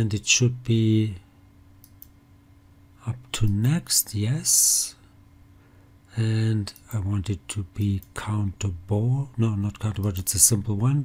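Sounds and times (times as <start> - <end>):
faint room hiss: 0.0 - 11.0
computer mouse clicks: 1.8 - 2.2.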